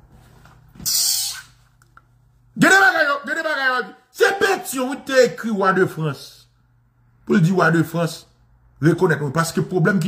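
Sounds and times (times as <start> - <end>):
man hissing breath: 0.8 - 1.5.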